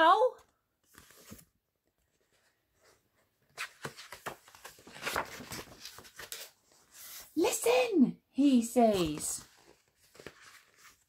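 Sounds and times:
paper rustling page turning: 0:00.8 - 0:01.5, 0:02.1 - 0:07.4, 0:08.8 - 0:11.0.

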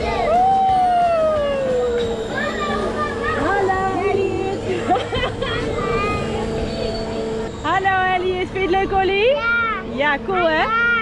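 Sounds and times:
fairground ride hum: 0:00.0 - 0:11.0.

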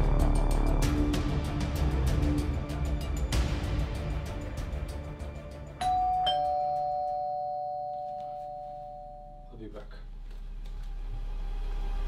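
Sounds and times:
two-note doorbell chime: 0:05.8 - 0:09.6.

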